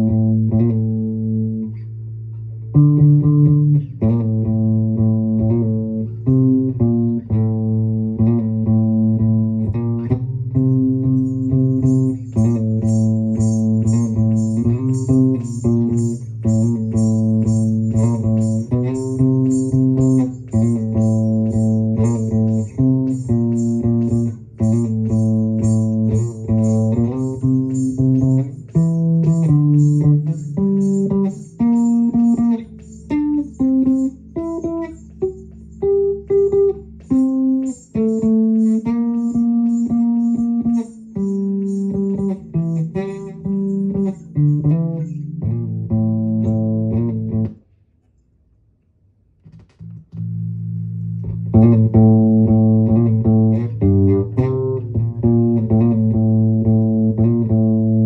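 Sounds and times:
electric bass guitar melody: 0.0s - 47.6s, 49.5s - 58.0s
ankle bells jingling: 11.0s - 45.2s.

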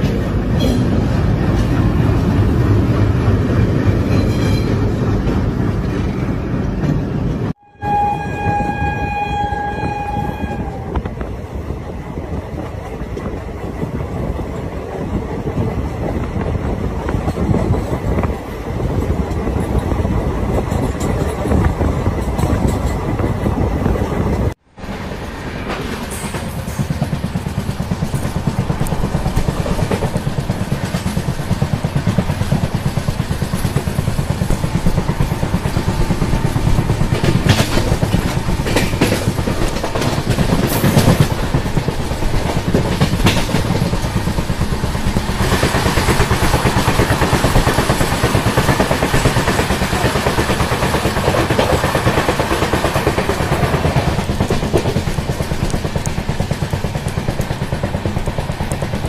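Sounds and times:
passing train rush: 0.0s - 59.0s
train wheels rumbling on rails: 0.0s - 59.0s.

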